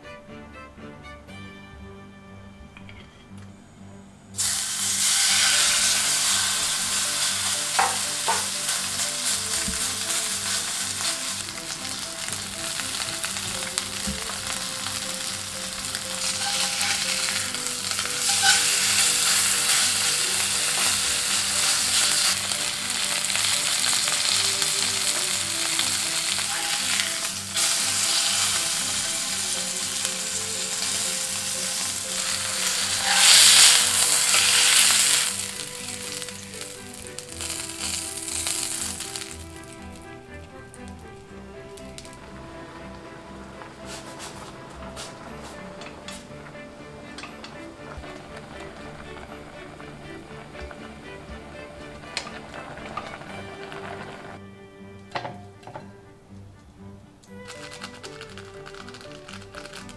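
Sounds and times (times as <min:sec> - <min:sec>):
steak sizzling in hot oil: 0:04.4 - 0:41.2, 0:47.1 - 0:54.3, 0:57.4 - 0:59.9.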